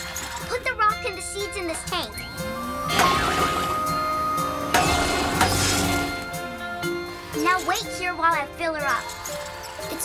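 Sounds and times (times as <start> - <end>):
background music with held notes: 0.0 - 10.0
clattering noise bursts: 4.7 - 6.2.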